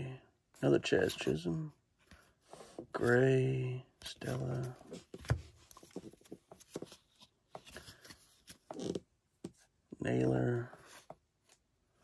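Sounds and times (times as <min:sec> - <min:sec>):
trading cards clicking and rustling: 0:04.2 - 0:09.0.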